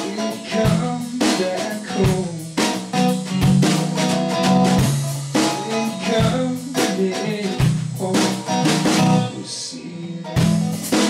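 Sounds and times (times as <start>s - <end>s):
sharp drum hits: 0.0s - 9.2s
drum kit: 0.0s - 9.5s, 10.2s - 11.0s
distorted electric guitar: 0.0s - 11.0s.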